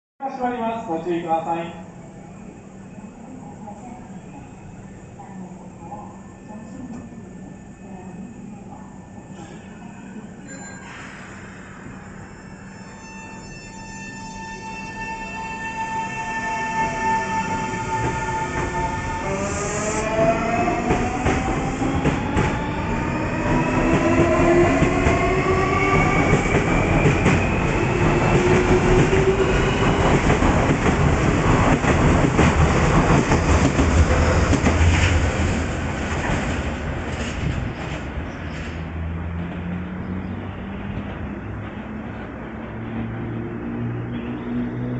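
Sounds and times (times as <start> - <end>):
wheels rumbling on rails: 20.5 - 44.9.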